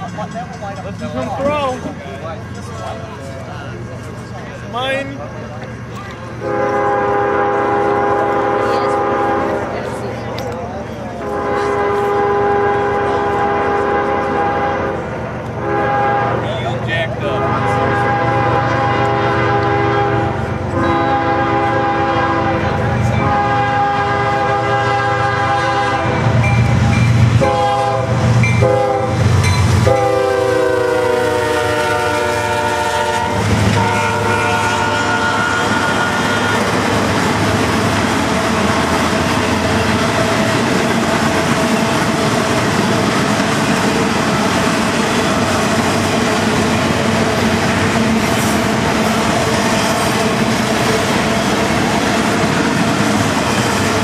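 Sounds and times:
train cars rumbling: 0.0 - 54.0
locomotive air horn blasts: 6.4 - 9.6, 11.2 - 15.0, 15.6 - 16.5, 17.4 - 22.6, 23.2 - 26.3, 27.4 - 29.2, 29.8 - 36.8.

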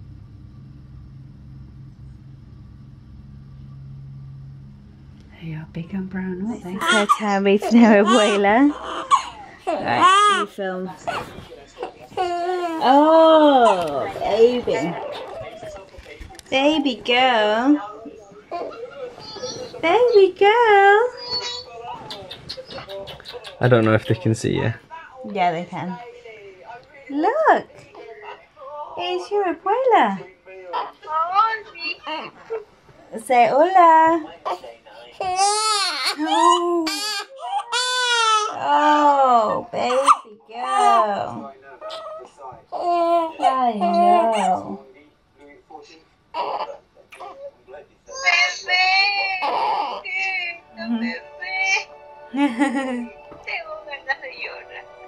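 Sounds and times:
faint background voices: 6.6 - 55.0
woman cooing in sing-song voice: 42.8 - 44.8, 48.8 - 53.1
child's voice: 48.1 - 49.3.

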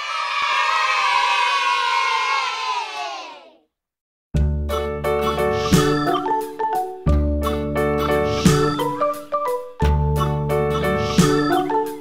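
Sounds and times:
children cheering: 0.0 - 3.6.

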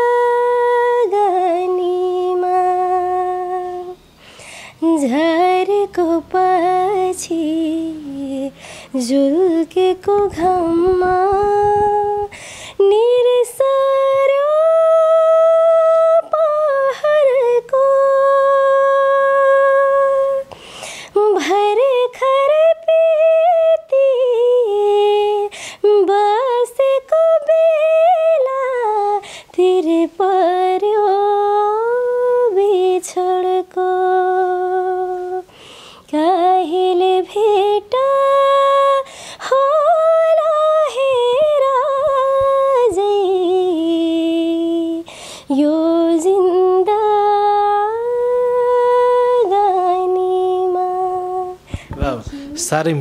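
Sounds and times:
woman singing unaccompanied: 0.0 - 52.7
singer breathing: 4.1 - 4.8, 8.5 - 9.0, 12.3 - 12.8, 20.5 - 21.2, 25.5 - 25.8, 29.2 - 29.5, 35.5 - 36.1, 39.1 - 39.4, 45.0 - 45.5, 51.6 - 52.7.

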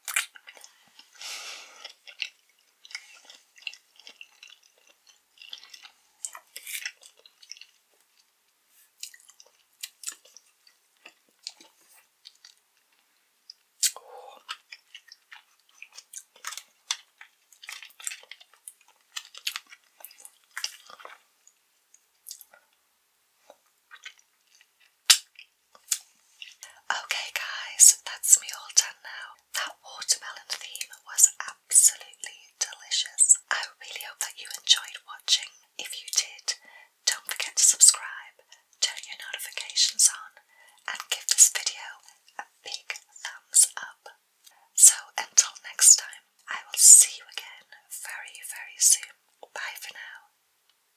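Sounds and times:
woman whispering: 13.9 - 14.5, 26.6 - 44.2, 44.8 - 50.3.

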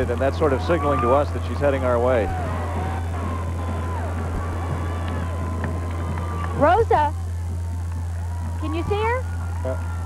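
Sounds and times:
faint music: 0.0 - 10.0
low hum: 0.0 - 10.0.

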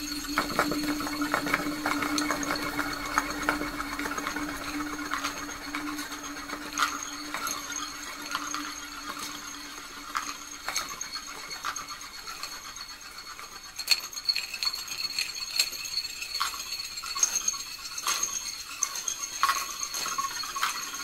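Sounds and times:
clicks taps and rattles: 0.0 - 12.6
thin high tones: 0.0 - 21.0.

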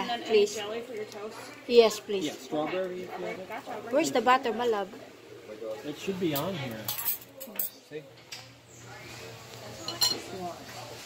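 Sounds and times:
cutlery clinking on plates: 9.8 - 10.3.

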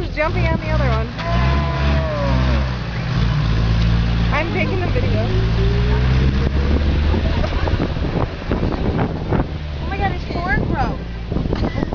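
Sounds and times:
vehicle engine idling: 0.0 - 11.9.

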